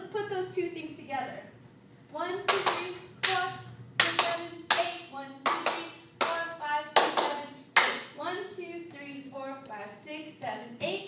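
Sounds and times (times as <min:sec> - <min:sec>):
woman's voice: 0:00.0 - 0:01.5, 0:02.1 - 0:11.0.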